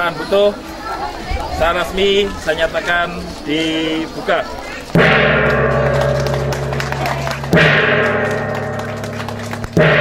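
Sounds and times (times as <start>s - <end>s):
gong struck with mallet: 5.0s - 10.0s.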